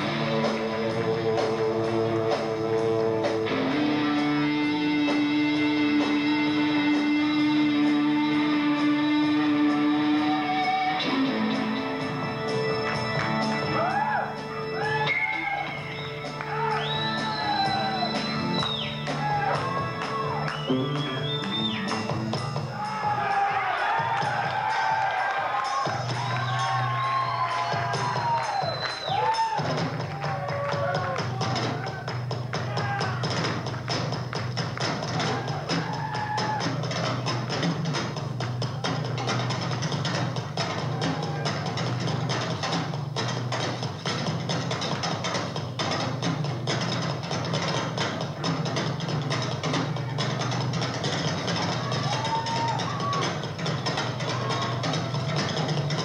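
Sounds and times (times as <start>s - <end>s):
drum kit solo: 0.0s - 56.0s.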